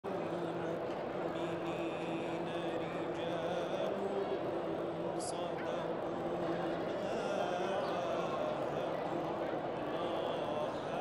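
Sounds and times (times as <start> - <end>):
man chanting over loudspeakers: 0.0 - 11.0.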